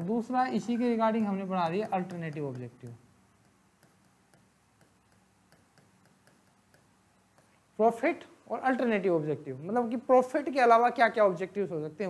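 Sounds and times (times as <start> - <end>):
stylus tapping on display board: 1.2 - 7.7.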